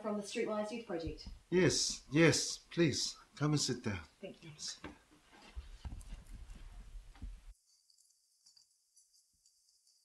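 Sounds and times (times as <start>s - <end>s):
footsteps walking across a room: 1.0s - 2.8s, 4.8s - 7.6s.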